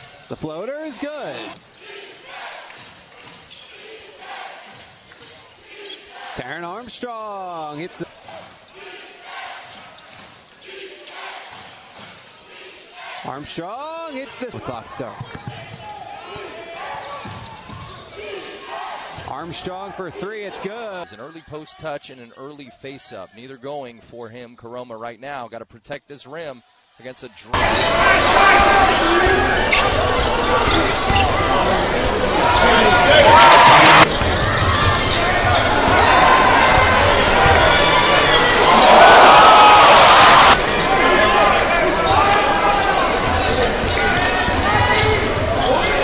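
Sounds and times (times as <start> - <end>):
crowd noise: 0.0 - 23.5, 26.6 - 46.0.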